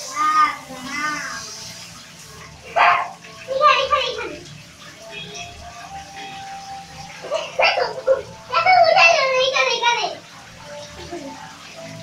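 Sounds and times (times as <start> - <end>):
children's voices: 0.0 - 1.6, 2.7 - 4.5, 7.2 - 10.3
shower hose spraying into bathtub: 0.0 - 12.0.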